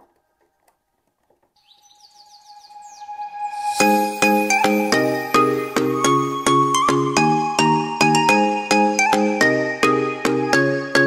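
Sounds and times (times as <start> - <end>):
bird chirps: 1.6 - 7.2
steady held tone: 2.4 - 7.9.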